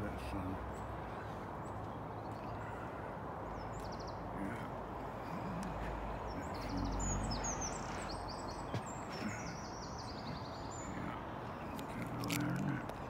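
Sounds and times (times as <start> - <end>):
small birds chirping: 0.0 - 13.0.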